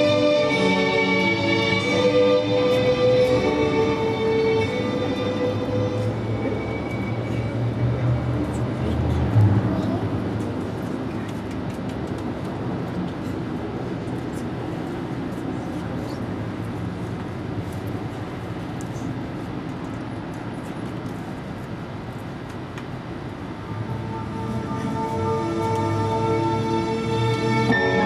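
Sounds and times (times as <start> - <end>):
low city rumble: 0.0 - 28.0.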